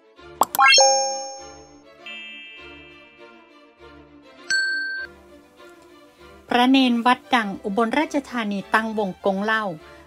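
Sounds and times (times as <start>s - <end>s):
quiet background music: 0.0s - 10.0s
electronic bell ding: 0.5s - 3.0s, 4.5s - 5.1s.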